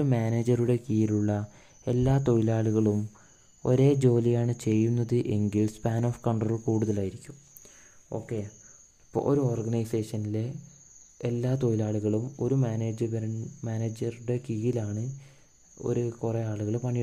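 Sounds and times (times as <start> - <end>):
person speaking: 0.0 - 7.5, 8.1 - 8.6, 9.2 - 15.2.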